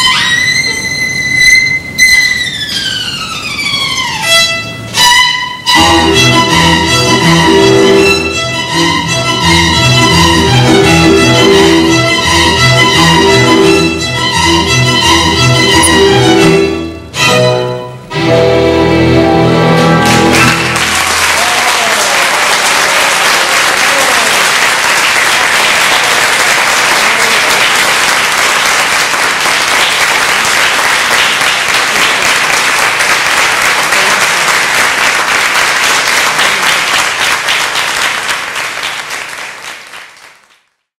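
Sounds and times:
string ensemble chord: 4.2s - 21.3s
audience applauding: 20.0s - 40.9s.

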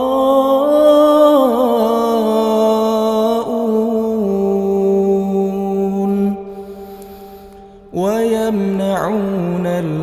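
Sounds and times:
man chanting melodically: 0.0s - 6.5s, 7.9s - 10.0s.

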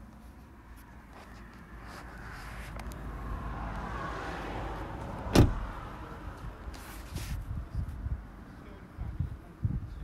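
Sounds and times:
car door shutting thump: 5.3s - 5.7s.

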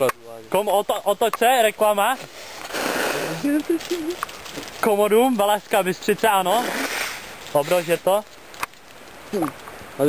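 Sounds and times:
plastic raincoat rustling: 2.2s - 5.5s.

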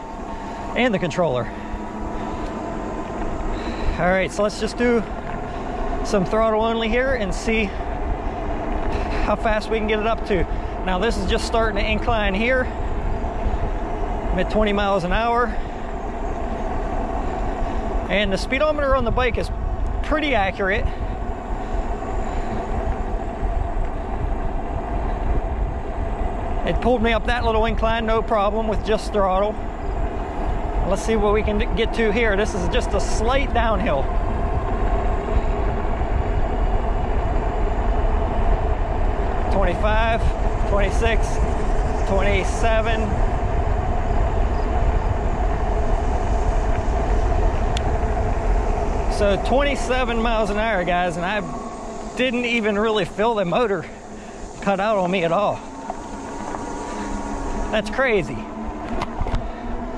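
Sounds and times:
e-bike tyre and drive hum: 0.0s - 59.9s
wind rumbling on microphone: 0.0s - 59.9s.

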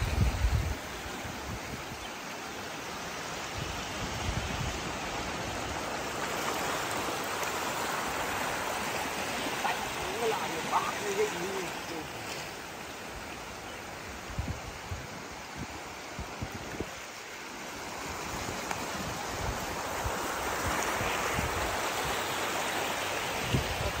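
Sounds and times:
seawater washing over rocks: 0.0s - 24.0s.

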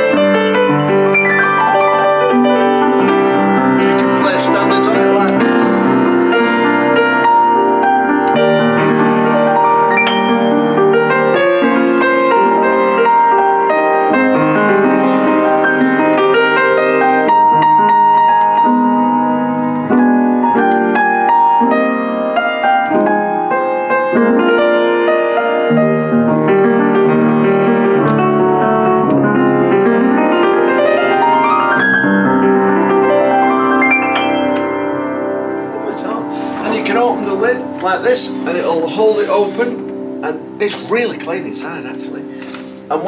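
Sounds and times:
upright piano playing: 0.0s - 43.0s.

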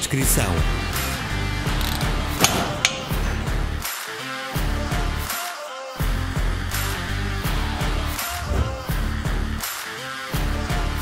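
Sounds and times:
background music: 0.0s - 11.0s
torque wrench clicks: 1.8s - 3.1s.

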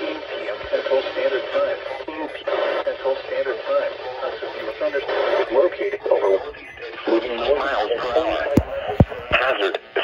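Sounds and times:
automated voice through small speaker: 0.0s - 10.0s.

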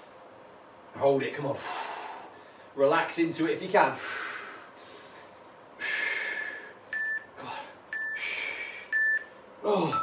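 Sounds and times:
short electronic beeps: 7.0s - 7.3s, 8.0s - 8.2s, 8.9s - 9.3s.

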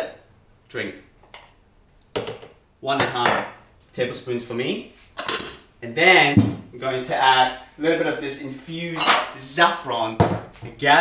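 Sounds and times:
person speaking: 5.8s - 11.0s.

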